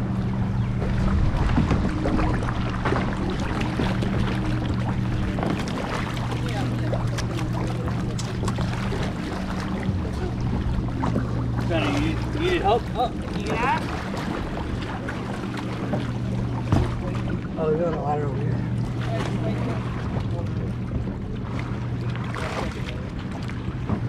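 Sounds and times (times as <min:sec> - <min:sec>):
wind buffeting microphone: 0:00.0 - 0:17.6
low engine hum: 0:00.0 - 0:24.0
water noise: 0:00.0 - 0:24.0.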